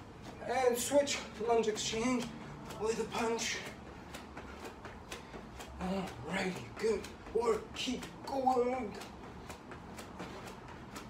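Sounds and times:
light footfalls on floor: 0:00.0 - 0:11.0.

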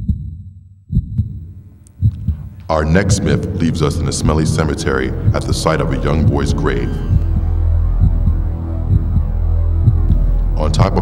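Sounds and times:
deep droning hum with throbbing pulse: 0:00.0 - 0:11.0.

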